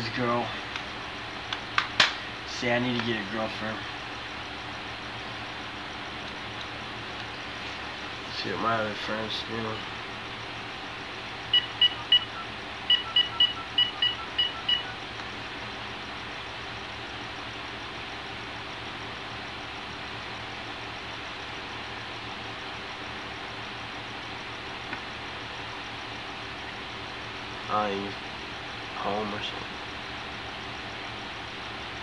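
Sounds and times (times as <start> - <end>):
telephone keypad beeps: 11.5 - 15.0.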